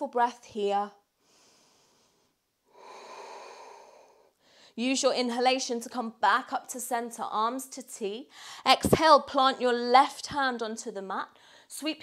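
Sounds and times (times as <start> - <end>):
woman breathing through nose: 1.2 - 4.8.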